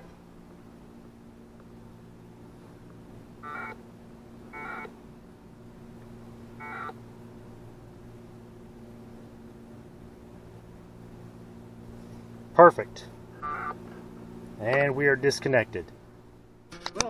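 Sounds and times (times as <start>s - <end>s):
steady low hum: 0.0s - 17.0s
two-tone data warble: 4.5s - 4.9s, 6.6s - 7.0s, 13.4s - 13.8s.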